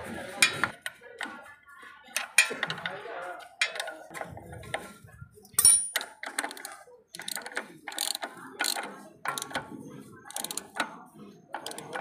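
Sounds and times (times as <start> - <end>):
ratchet wrench clicking: 3.6 - 3.9, 5.6 - 9.7, 10.3 - 10.9, 11.6 - 12.0.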